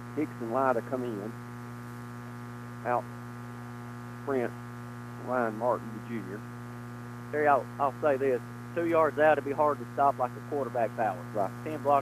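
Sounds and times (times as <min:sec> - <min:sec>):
electrical mains hum: 0:00.0 - 0:12.0
announcer speaking: 0:00.2 - 0:01.3, 0:05.2 - 0:06.4, 0:07.4 - 0:12.0.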